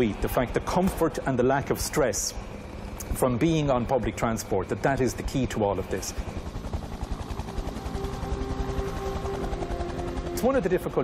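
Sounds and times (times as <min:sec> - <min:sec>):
helicopter rotor pulsing: 0:00.0 - 0:11.0.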